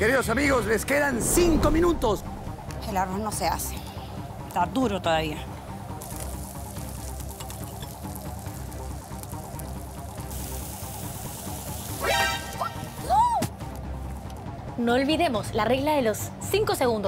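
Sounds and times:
background music: 0.0 - 17.0
comic warbling glide: 0.8 - 2.7
hiss: 6.0 - 12.9.

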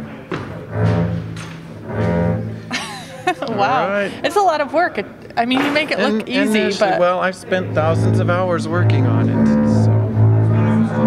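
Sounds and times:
knocks: 0.3 - 2.6, 5.5 - 6.0
bowed double bass note: 0.6 - 2.7, 7.5 - 11.0.

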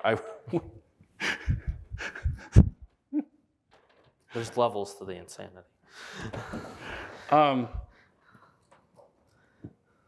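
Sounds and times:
breathy laughing: 1.2 - 3.3.

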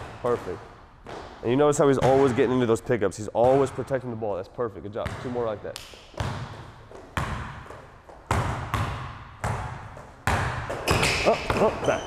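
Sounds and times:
basketball bouncing on court: 3.4 - 4.0, 5.0 - 12.0.

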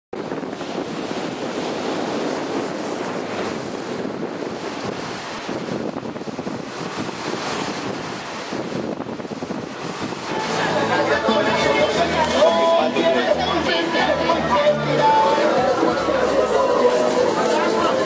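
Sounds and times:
strong wind on microphone: 0.1 - 18.0
surf breaking on shore: 0.2 - 18.0.

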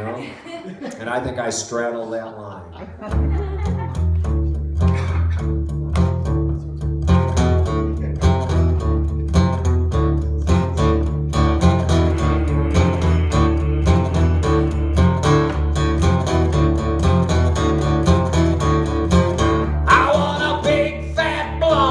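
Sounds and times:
acoustic guitar strumming: 3.1 - 21.9.

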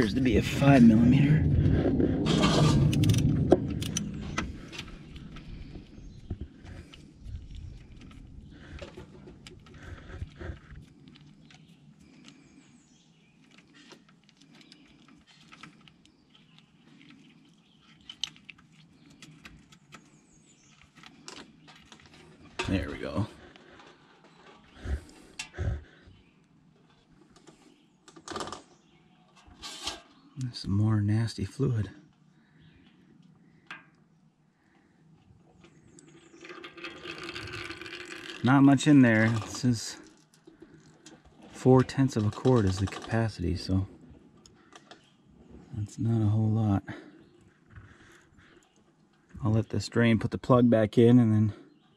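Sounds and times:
oil trickling into metal pan: 36.1 - 39.6.

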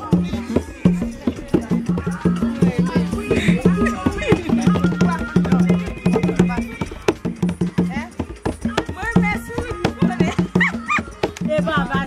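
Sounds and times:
hand drum beaten fast: 0.0 - 12.0.

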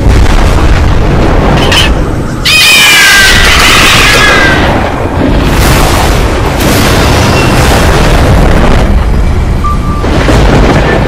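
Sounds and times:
deep rumbling boom: 0.0 - 2.5, 3.1 - 11.0.

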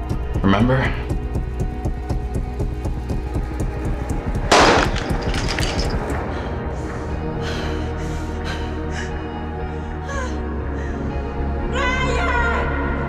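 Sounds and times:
tense film score music: 0.0 - 13.0
loud gunshot: 4.5 - 5.2.

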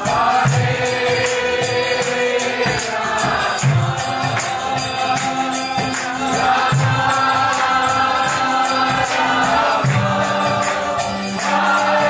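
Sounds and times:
drum beats: 0.0 - 12.0
hand cymbals striking: 0.0 - 12.0
voices chanting: 0.0 - 12.0.

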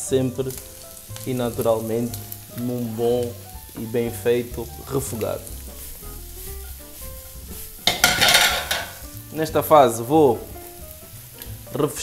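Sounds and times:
food sizzling in a frying pan: 0.0 - 12.0.

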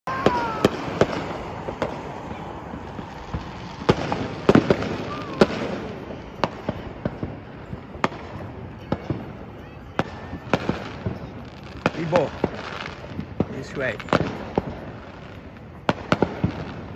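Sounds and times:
fireworks bangs and pops: 0.1 - 16.9
steady rumbling haze: 0.5 - 11.6.

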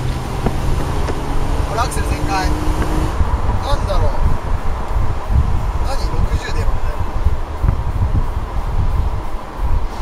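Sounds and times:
low engine rumble: 0.0 - 10.0
road noise: 0.0 - 10.0
wind rushing over microphone: 0.0 - 10.0.

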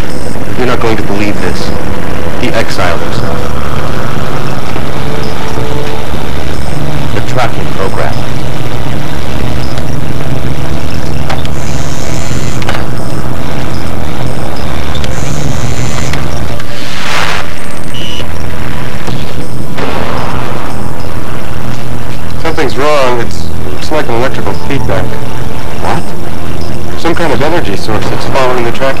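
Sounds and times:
high electronic tones: 0.0 - 29.0
low machine-like drone: 0.0 - 29.0.

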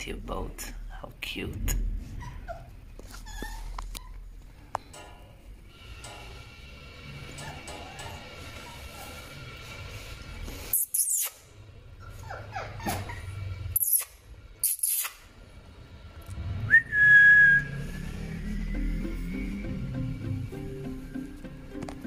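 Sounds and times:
puppies whimpering: 2.1 - 4.4, 7.2 - 9.4, 12.0 - 13.4
soft background music: 17.8 - 22.0.

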